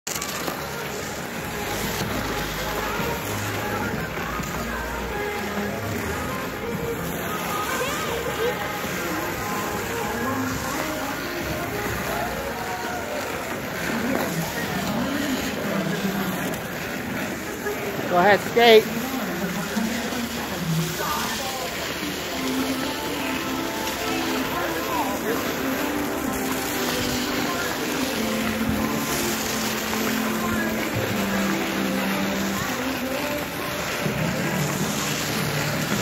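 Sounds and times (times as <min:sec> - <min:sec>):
background music: 0:00.1 - 0:36.0
indistinct voices of skaters: 0:00.1 - 0:36.0.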